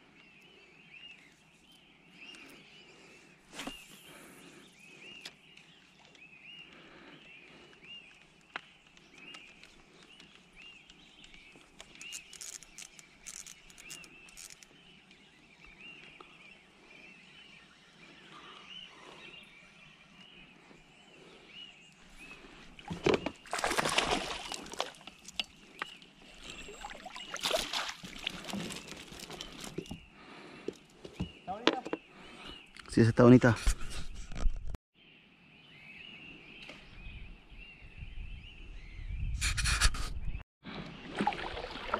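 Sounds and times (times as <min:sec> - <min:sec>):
water splashing and sloshing: 0:22.5 - 0:30.1, 0:40.6 - 0:41.9.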